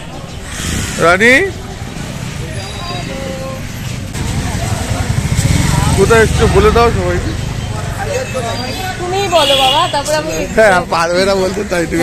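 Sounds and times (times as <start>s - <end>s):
crowd chatter: 0.0s - 12.0s
low traffic rumble: 0.0s - 12.0s.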